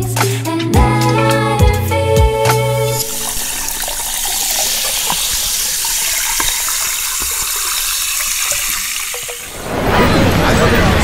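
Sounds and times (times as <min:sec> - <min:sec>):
liquid pouring into glass: 0:02.9 - 0:09.5
bubbles fizzing: 0:02.9 - 0:09.8.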